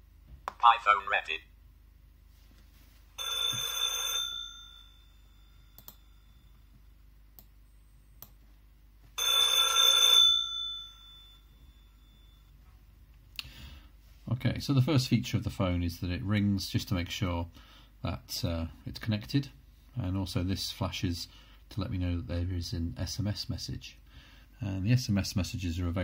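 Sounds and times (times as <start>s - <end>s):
telephone bells ringing: 3.2s - 6.6s, 9.2s - 12.5s.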